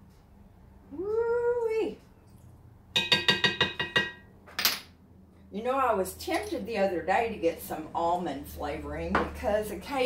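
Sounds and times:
spoon clinking on glass: 3.0s - 4.3s.

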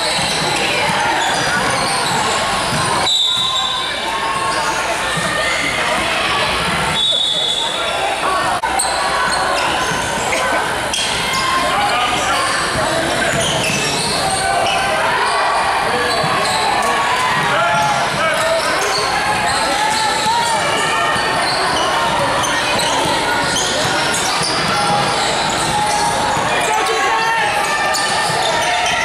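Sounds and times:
voices calling out in a gym: 0.0s - 29.0s.

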